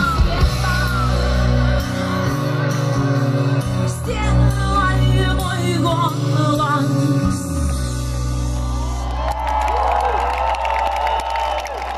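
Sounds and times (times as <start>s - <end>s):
audience cheering and clapping: 8.6s - 11.9s.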